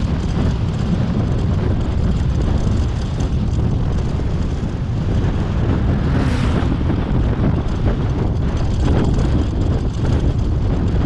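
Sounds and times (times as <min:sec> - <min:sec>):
road noise: 0:00.0 - 0:11.0
vehicle engine: 0:00.0 - 0:11.0
wind buffeting microphone: 0:00.0 - 0:11.0.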